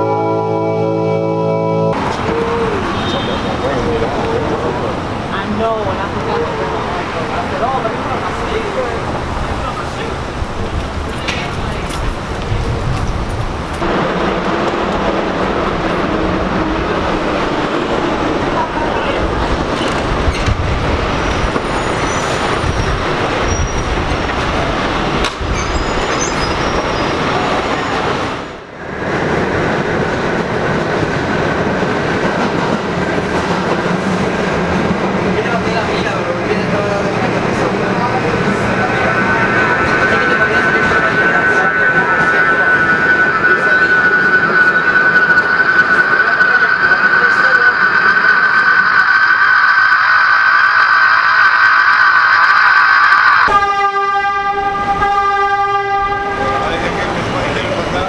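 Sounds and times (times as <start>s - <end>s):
held pitched tone: 0.0s - 3.1s, 37.0s - 56.9s
subway train rumble and rattle: 0.0s - 58.0s
high squeal: 19.8s - 28.1s, 36.8s - 57.8s.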